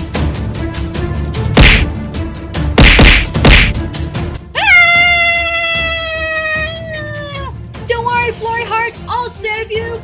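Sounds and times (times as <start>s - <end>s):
background music: 0.0s - 10.0s
short sharp hits: 1.6s - 2.0s, 2.8s - 3.8s.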